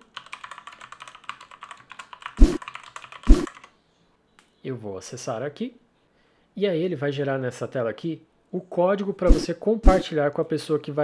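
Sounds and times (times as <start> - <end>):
computer keyboard typing: 0.0 - 3.7.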